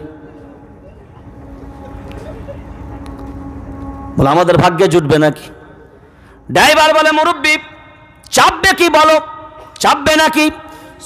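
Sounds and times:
low rumble of amplified gathering: 0.0 - 11.0.

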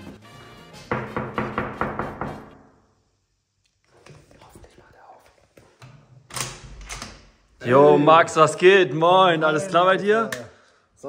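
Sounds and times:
knuckles knocking on wooden door: 0.9 - 2.6.

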